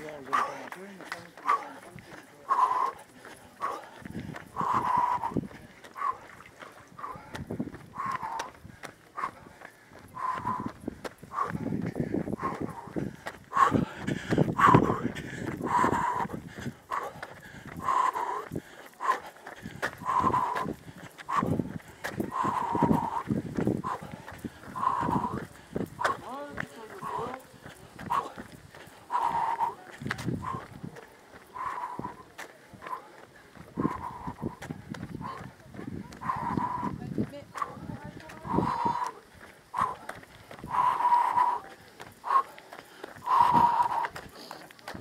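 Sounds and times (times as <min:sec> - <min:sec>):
heavy rhythmic breathing: 0:00.0 - 0:45.0
running footsteps: 0:00.0 - 0:45.0.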